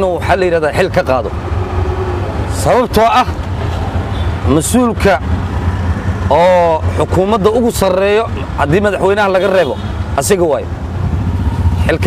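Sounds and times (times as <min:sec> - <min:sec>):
auto-rickshaw engine rumble: 0:00.0 - 0:12.0
man speaking: 0:02.5 - 0:03.4, 0:06.3 - 0:10.7, 0:11.8 - 0:12.0.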